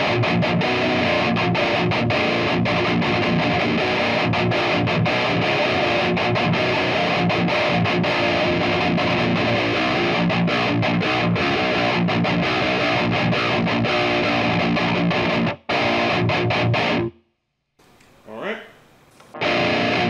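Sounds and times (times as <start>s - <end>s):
distorted electric guitar riffing: 0.0s - 17.2s, 18.3s - 20.0s.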